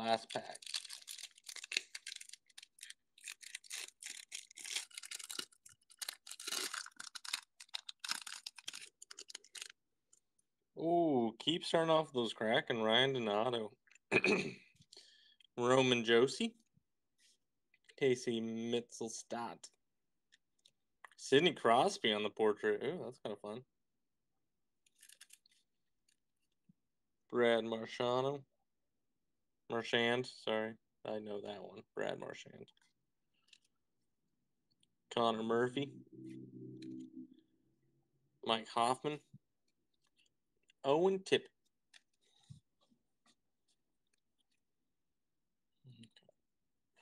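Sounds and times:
foil card pack crinkling and tearing: 0.2 - 9.8.

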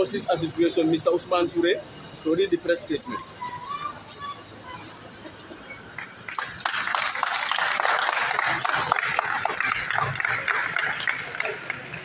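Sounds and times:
audience applauding: 6.0 - 12.0.

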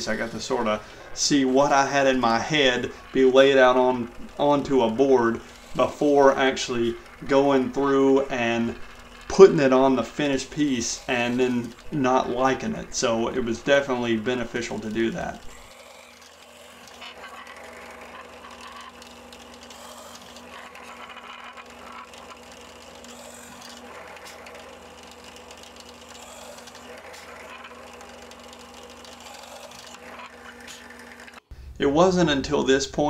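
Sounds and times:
drill press motor humming: 0.0 - 31.5.

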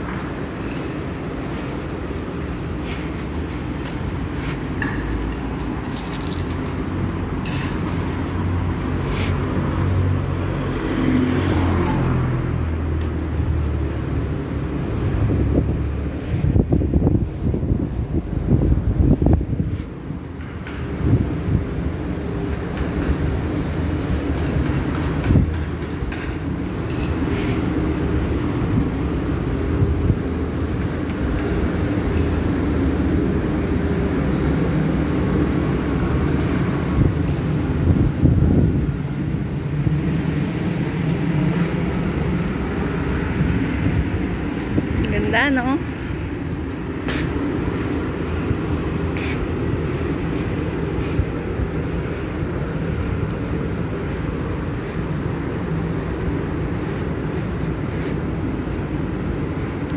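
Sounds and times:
city traffic rumble: 0.0 - 59.9.

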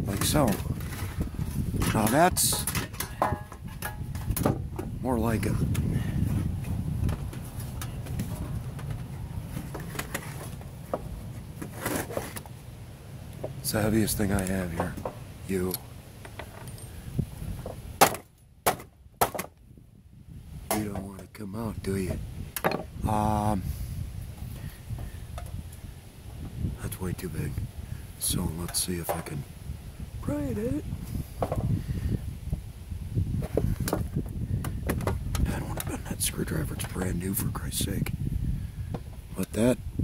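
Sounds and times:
sharp metal knocks: 1.8 - 4.9, 18.0 - 19.5.

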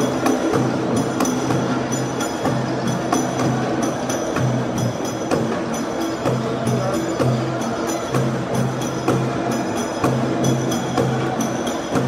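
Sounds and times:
frame drums beating: 0.0 - 12.0.

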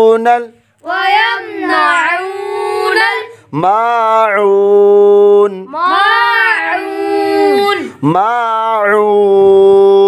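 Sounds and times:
person chanting recitation: 0.0 - 10.0.

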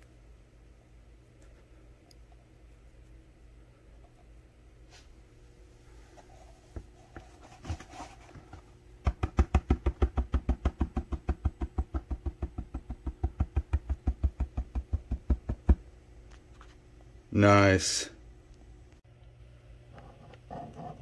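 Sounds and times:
rapid tapping of hard object: 9.0 - 15.9.

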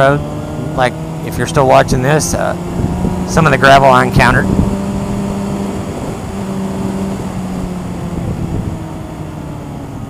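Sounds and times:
motorcycle engine cruising: 0.0 - 10.0
wind rushing over microphone: 0.0 - 10.0.

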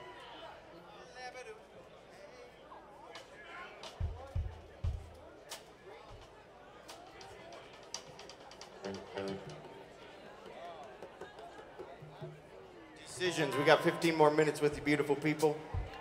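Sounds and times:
faint crowd talk: 0.0 - 16.0.

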